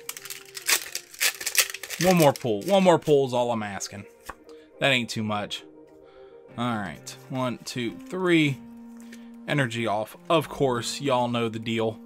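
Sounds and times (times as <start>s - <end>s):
foil wrapper crinkling and tearing: 0.0s - 3.0s.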